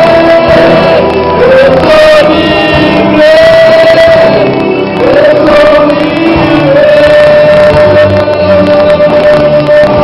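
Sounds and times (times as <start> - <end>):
group of voices singing: 0.0 - 10.0
loud music: 0.0 - 10.0.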